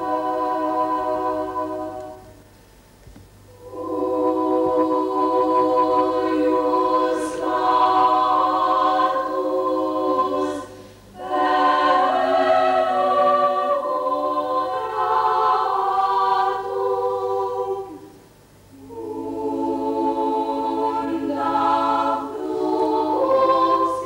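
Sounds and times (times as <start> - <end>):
choir singing unaccompanied: 0.0 - 2.4, 3.5 - 24.0.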